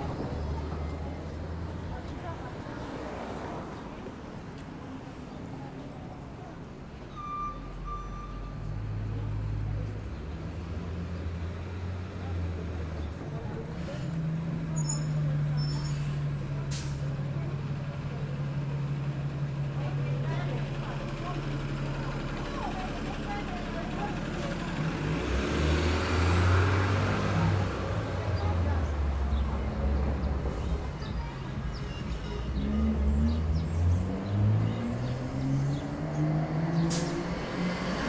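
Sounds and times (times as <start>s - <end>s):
bus engine idling: 0.0s - 25.4s
traffic noise: 0.0s - 38.0s.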